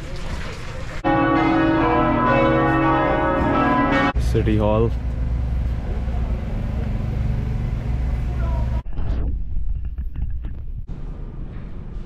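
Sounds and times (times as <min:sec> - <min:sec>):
street background: 0:00.0 - 0:08.8, 0:09.9 - 0:12.0
vehicle engine idling: 0:04.2 - 0:08.8.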